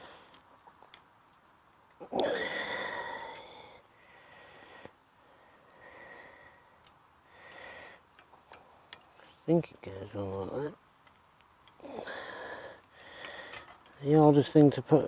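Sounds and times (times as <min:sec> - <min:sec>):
man exhaling heavily: 0:02.0 - 0:04.9, 0:11.8 - 0:13.6
faint plastic clicks: 0:03.0 - 0:03.9, 0:04.7 - 0:10.4, 0:11.0 - 0:14.8.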